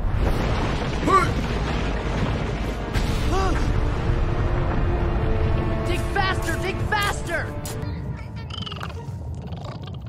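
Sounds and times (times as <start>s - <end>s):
creature-like croaking call: 8.4s - 10.0s.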